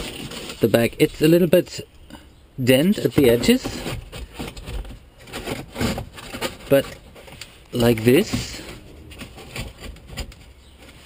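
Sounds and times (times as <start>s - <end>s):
cardboard box scraping: 0.0s - 0.6s, 7.9s - 11.0s.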